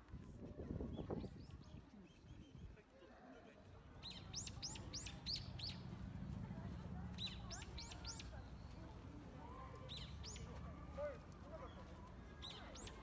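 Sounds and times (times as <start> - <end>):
faint low background murmur: 0.0 - 13.0.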